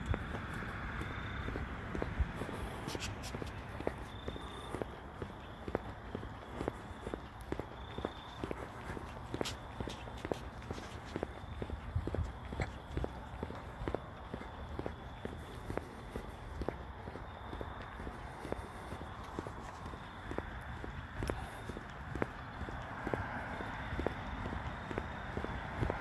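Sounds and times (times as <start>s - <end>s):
footsteps on asphalt: 0.0s - 26.0s.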